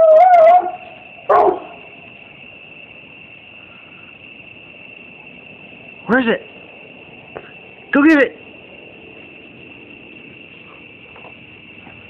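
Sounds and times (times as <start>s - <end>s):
dog yelp: 0.0s - 1.8s.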